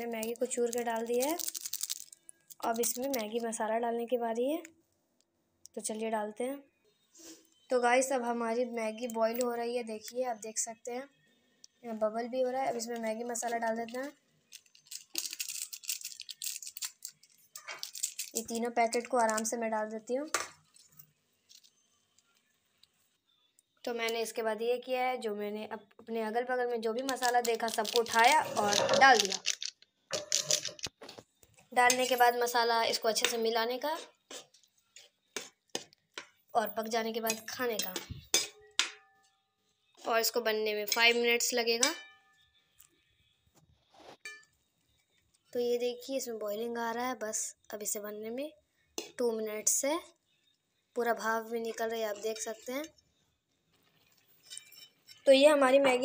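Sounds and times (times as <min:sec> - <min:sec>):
seasoning packet shaken rustling: 0:00.6 - 0:02.2, 0:14.5 - 0:17.2, 0:17.8 - 0:18.6, 0:27.2 - 0:30.8.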